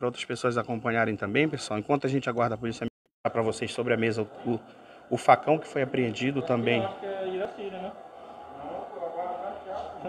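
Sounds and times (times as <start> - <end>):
faint background speech: 3.3 - 10.0.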